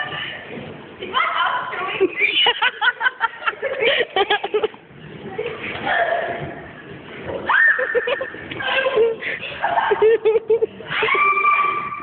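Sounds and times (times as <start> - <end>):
high-pitched scream: 10.9 - 12.0.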